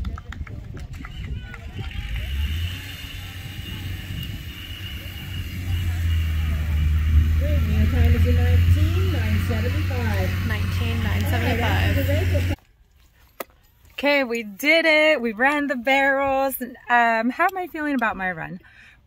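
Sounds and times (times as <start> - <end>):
steady low rumble: 0.0 - 12.6
people talking indistinctly: 2.4 - 12.6.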